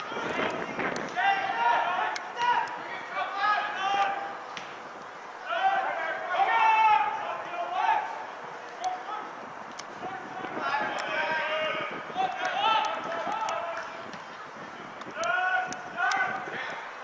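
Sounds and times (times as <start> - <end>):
distant shouted voices: 0.0 - 17.0.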